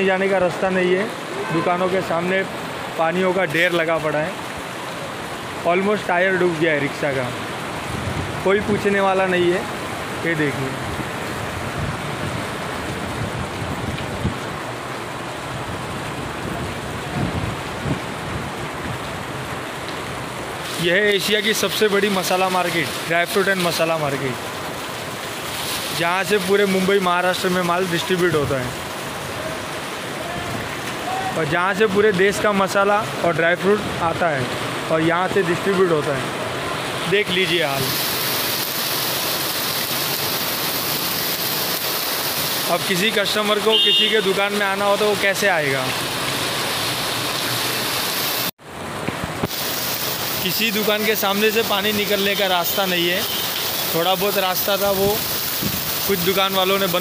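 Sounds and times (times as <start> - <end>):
heavy rain pouring: 0.0 - 57.0.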